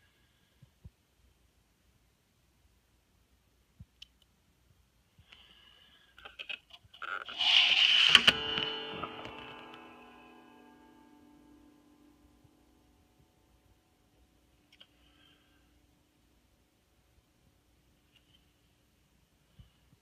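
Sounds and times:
hand scraping guitar strings: 7.0 - 12.8
guitar strings ringing: 7.3 - 14.0.

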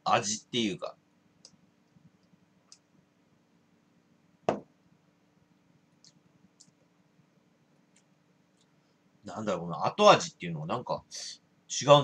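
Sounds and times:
glass set down on tabletop: 4.5 - 4.7.

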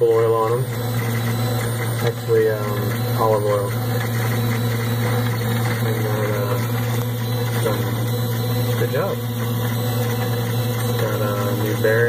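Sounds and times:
gearbox humming: 0.0 - 12.0.

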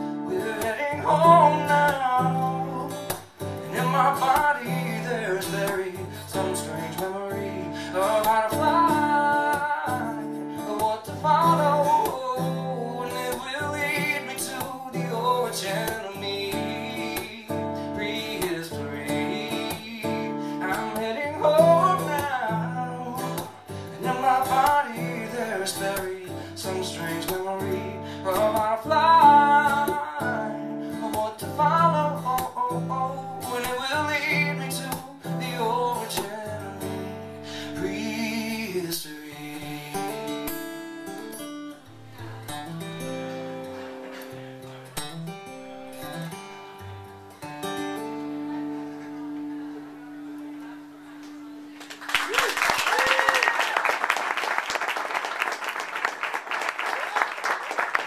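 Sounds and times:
man singing: 0.0 - 40.7
acoustic guitar: 0.0 - 58.0.

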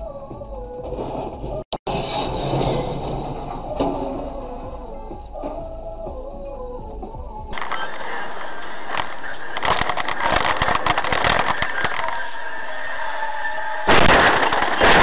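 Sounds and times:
music playing: 0.0 - 1.7, 2.4 - 7.6
low rumble: 0.0 - 7.6.

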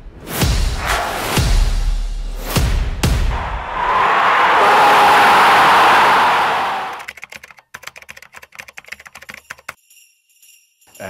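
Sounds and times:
keyboard typing clicks: 7.0 - 9.8.

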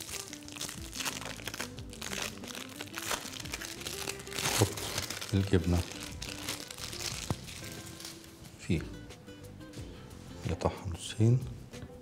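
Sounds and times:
wrapper crinkling and rustling: 0.0 - 8.3
soft background music: 0.0 - 12.0.

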